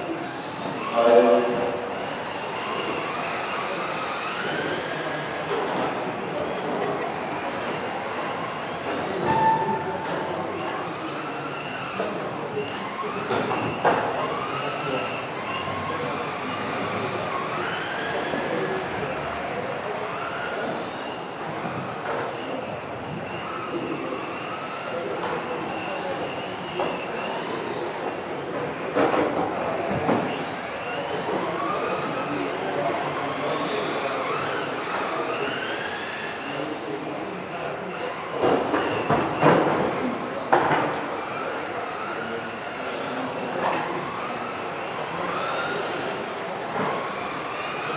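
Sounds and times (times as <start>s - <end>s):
electric rc car motors whining: 0.0s - 47.9s.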